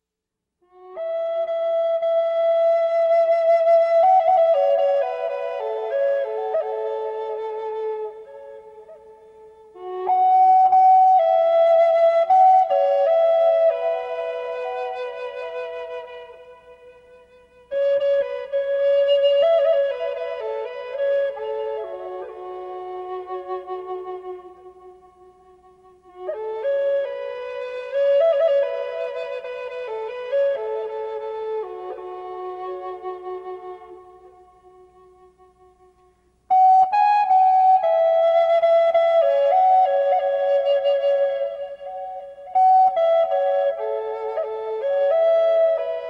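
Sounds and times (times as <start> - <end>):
slow solo flute melody: 0.6 - 46.0.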